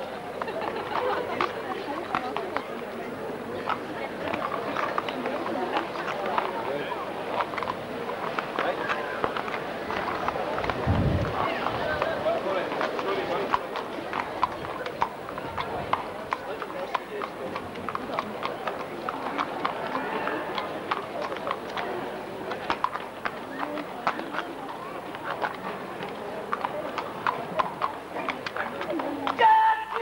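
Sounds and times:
crowd talking: 0:00.0 - 0:30.0
horse hooves clip-clopping on pavement: 0:00.0 - 0:30.0.

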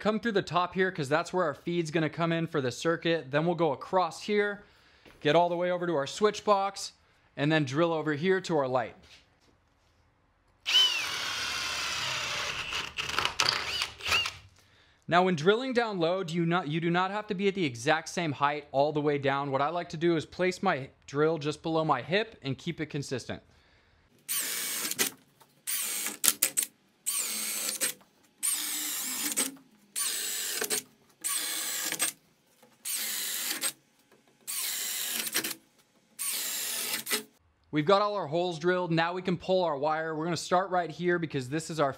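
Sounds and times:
cordless drill boring wood: 0:10.6 - 0:14.4, 0:24.3 - 0:32.2, 0:32.8 - 0:33.8, 0:34.4 - 0:35.6, 0:36.2 - 0:37.4.

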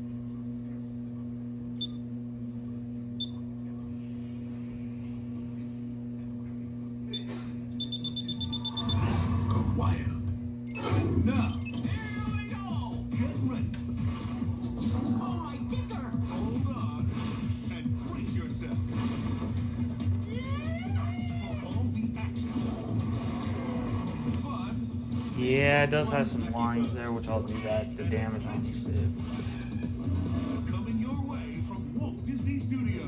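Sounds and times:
low electrical hum: 0:00.0 - 0:33.0
short high-pitched beeps: 0:07.1 - 0:09.0
trailer narration: 0:21.6 - 0:33.0.

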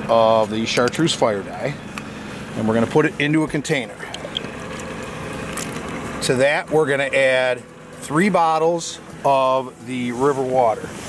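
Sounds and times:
low background hum: 0:00.0 - 0:11.0
liquid trickling into plastic tub: 0:03.8 - 0:06.3.

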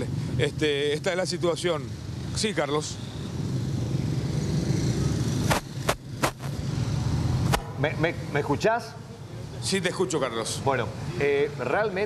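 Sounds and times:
congested road traffic rumble: 0:00.0 - 0:12.0
sharp clicks: 0:05.5 - 0:06.6.

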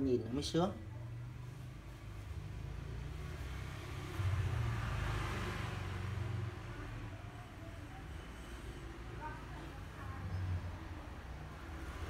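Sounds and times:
vehicle passing by: 0:00.2 - 0:12.0.

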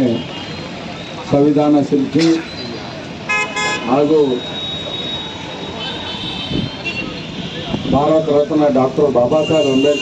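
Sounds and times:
man speaking over a microphone: 0:00.0 - 0:00.4, 0:01.2 - 0:02.9, 0:03.6 - 0:04.8, 0:06.8 - 0:10.0
vehicle horn toots: 0:03.3 - 0:04.3, 0:05.0 - 0:08.0, 0:09.4 - 0:10.0.

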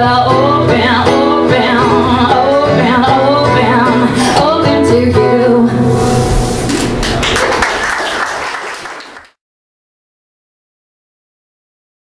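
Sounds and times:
live acoustic song: 0:00.0 - 0:09.2
audience applauding: 0:06.7 - 0:09.4.

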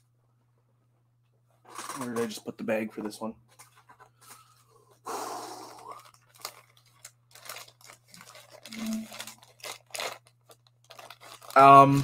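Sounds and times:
plastic bag crinkling and rustling: 0:05.8 - 0:12.0.

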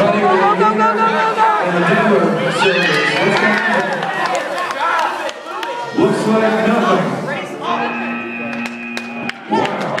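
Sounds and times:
voices: 0:00.0 - 0:10.0
electronic buzzer tone: 0:07.6 - 0:09.4.

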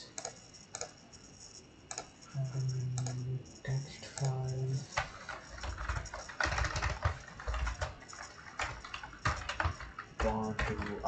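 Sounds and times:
computer keyboard typing: 0:00.0 - 0:11.0.

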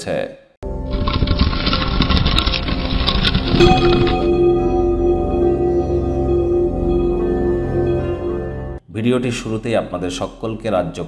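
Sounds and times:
steady ringing tone: 0:03.3 - 0:08.8.

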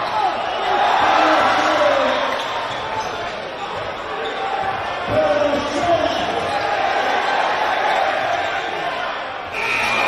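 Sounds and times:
crowd voices and shouting: 0:00.0 - 0:10.0.

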